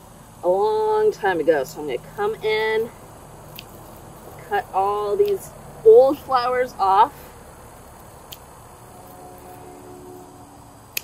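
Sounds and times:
faint steady hum: 0.0 - 11.0
pruners snipping stems: 5.1 - 5.4.

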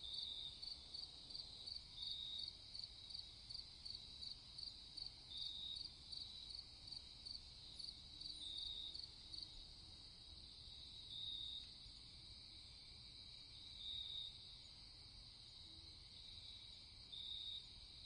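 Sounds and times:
insect trill: 0.0 - 18.0
insects chirping: 0.0 - 18.0.

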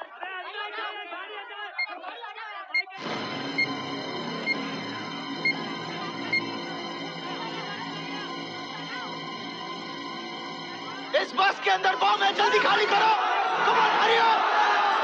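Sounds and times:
overlapping crowd voices: 0.0 - 9.5, 10.7 - 15.0
tense film score: 3.0 - 12.9
electronic timer beeps: 3.6 - 3.8, 4.4 - 4.7, 5.4 - 5.6, 6.3 - 6.5.

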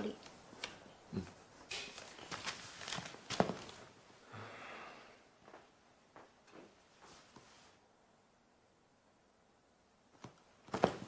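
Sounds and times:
footsteps: 1.3 - 3.9, 5.4 - 7.6.

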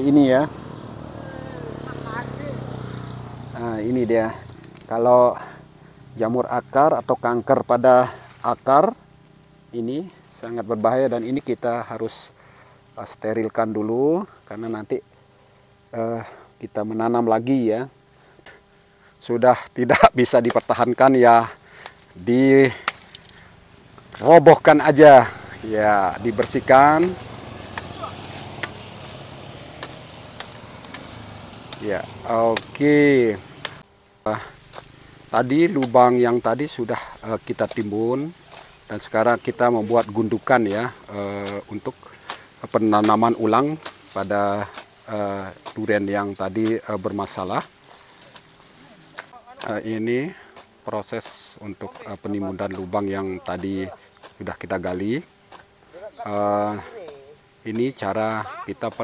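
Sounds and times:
small engine running: 0.0 - 6.1, 25.0 - 33.8
sickle chopping branches: 2.0 - 5.1, 19.9 - 59.0.

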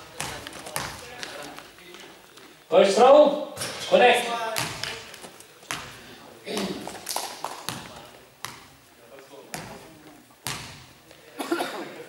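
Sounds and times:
basketball bouncing on gym floor: 0.0 - 1.4, 4.5 - 6.9, 7.7 - 8.8, 9.5 - 10.9.

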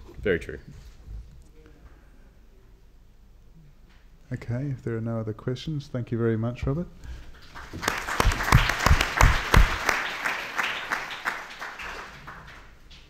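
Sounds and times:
audience applauding: 7.4 - 12.9.

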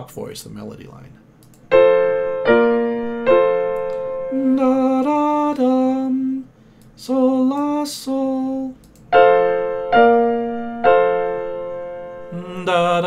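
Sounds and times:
piano chords: 1.7 - 5.6, 9.1 - 13.0
man singing sustained notes: 4.3 - 8.8, 12.3 - 13.0.

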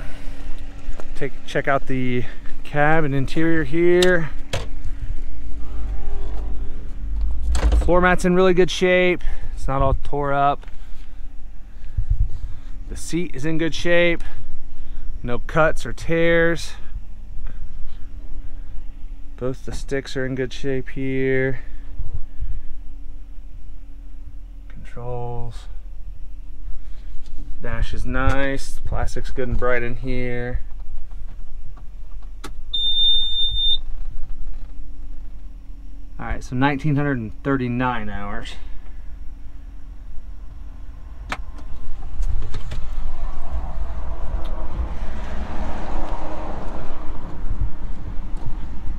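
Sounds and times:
low rumble: 0.0 - 13.0, 39.1 - 48.9
faint steady hum: 0.0 - 45.1
high-pitched warning beep: 32.7 - 33.9.

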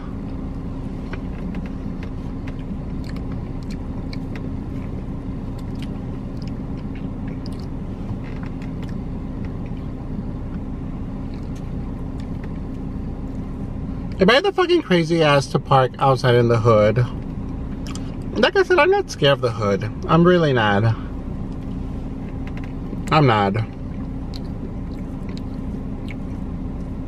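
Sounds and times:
car idling hum: 0.0 - 27.0
person chewing: 1.1 - 13.5, 17.4 - 18.3, 23.8 - 27.0.

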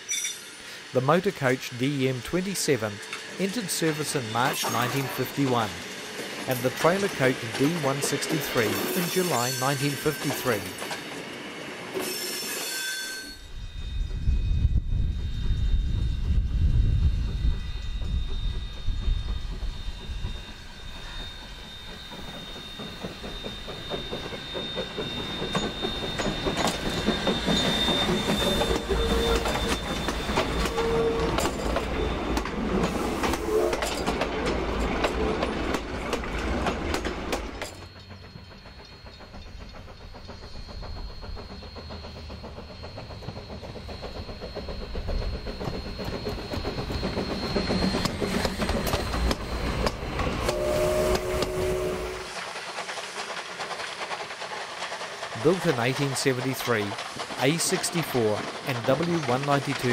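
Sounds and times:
steam locomotive exhaust beats: 0.0 - 12.4, 13.4 - 59.9
train wheel clatter: 1.4 - 13.5, 14.6 - 59.9
steam locomotive whistle: 6.5 - 10.9, 11.9 - 34.2, 45.2 - 52.5.

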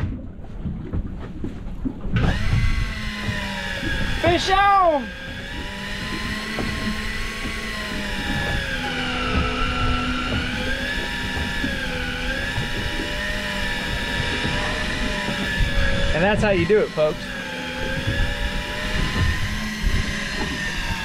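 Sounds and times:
fishing reel motor whine: 2.1 - 21.0.

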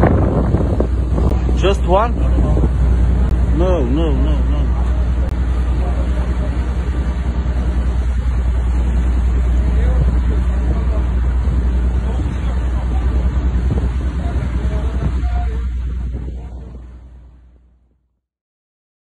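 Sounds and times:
wind rushing over microphone: 0.0 - 17.6
steady low rumble: 0.0 - 18.2
man calling out: 3.5 - 4.8.

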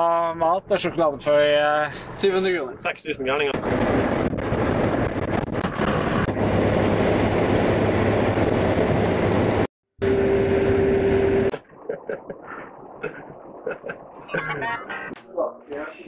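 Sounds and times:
road and wind noise inside bus: 0.0 - 11.6
steady whine: 2.2 - 16.0
low engine hum: 3.6 - 14.8.

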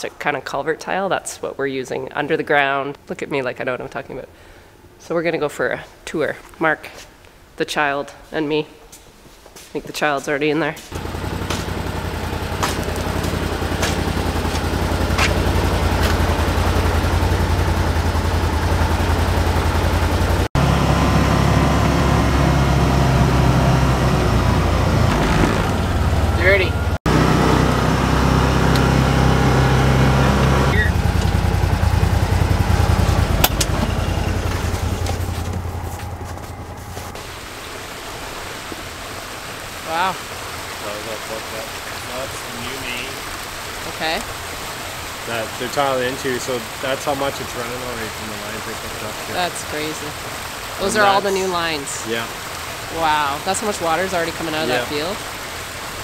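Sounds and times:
vehicle engine running: 10.9 - 37.9, 43.9 - 56.0
water rushing from pipe: 10.9 - 56.0.

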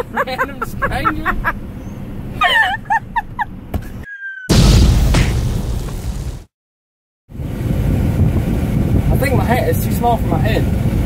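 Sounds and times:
truck cab road noise: 0.0 - 4.1, 7.3 - 11.0
boom sound effect: 4.5 - 6.5.

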